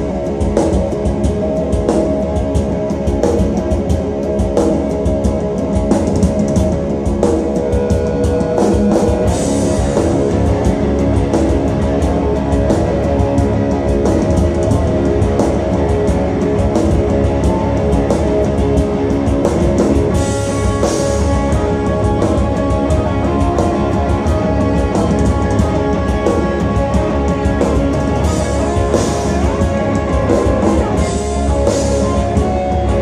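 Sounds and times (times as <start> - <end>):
black metal band playing: 0.0 - 33.0
distorted electric guitars: 0.0 - 33.0
fast dense drumming: 0.0 - 33.0.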